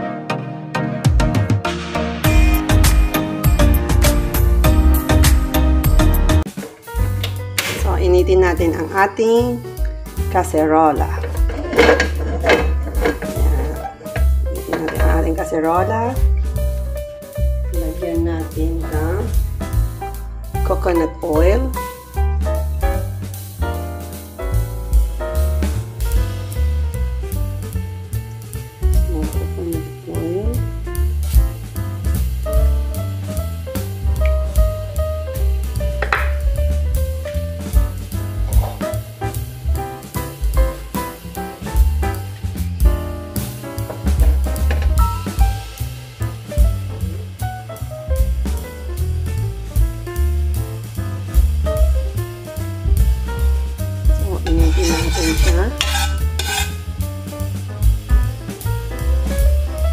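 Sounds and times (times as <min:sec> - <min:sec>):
jazz music with drums and bass: 0:00.0 - 0:59.9.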